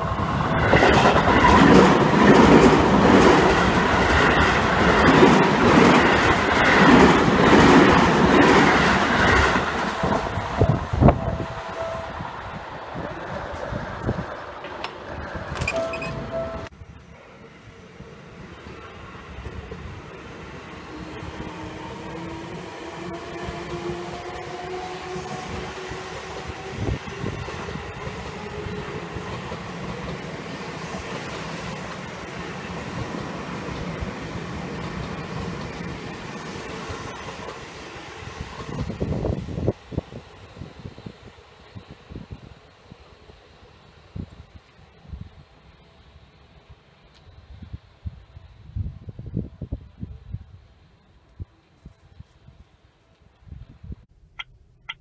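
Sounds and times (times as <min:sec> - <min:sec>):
loud train clacks: 0:00.0 - 0:11.9, 0:20.8 - 0:39.7
train wheels rumbling on rail: 0:00.0 - 0:43.4.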